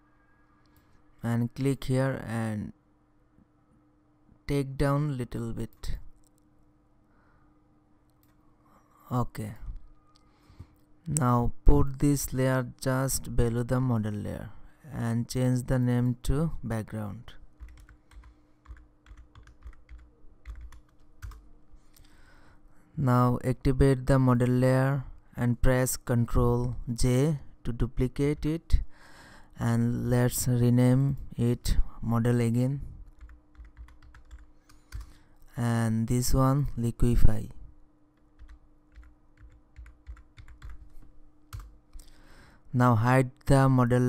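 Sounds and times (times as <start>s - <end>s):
faint steady hum: 0.0s - 44.0s
keyboard typing clicks: 17.6s - 21.4s, 33.1s - 35.1s, 38.2s - 40.9s.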